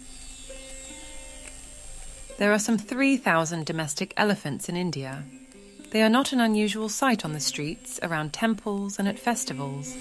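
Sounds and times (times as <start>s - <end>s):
quiet held music notes: 0.0s - 10.0s.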